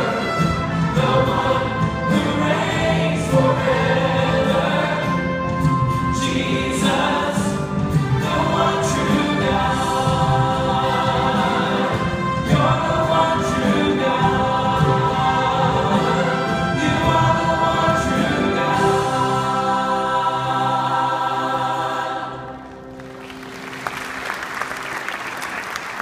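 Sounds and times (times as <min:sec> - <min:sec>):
choir singing gospel song: 0:00.0 - 0:23.0
instrumental accompaniment: 0:00.0 - 0:26.0.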